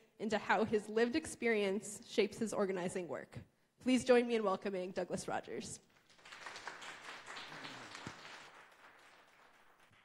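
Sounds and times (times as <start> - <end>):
audience applauding: 6.0 - 10.0.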